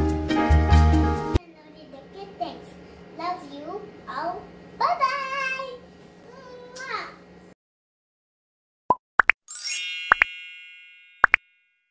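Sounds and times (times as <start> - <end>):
rising bloop pops: 8.9 - 9.4
bright shimmering chime: 9.5 - 11.9.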